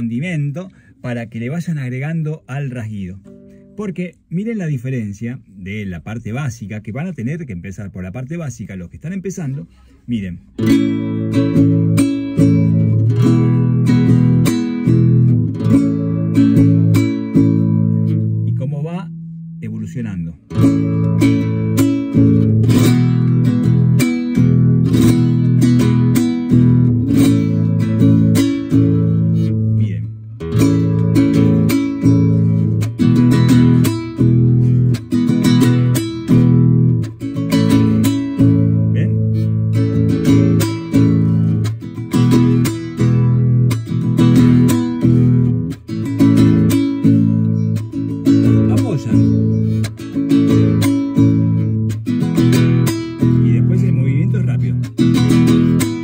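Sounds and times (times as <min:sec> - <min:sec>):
classical guitar strumming: 0:00.0 - 0:04.9, 0:09.4 - 0:56.0.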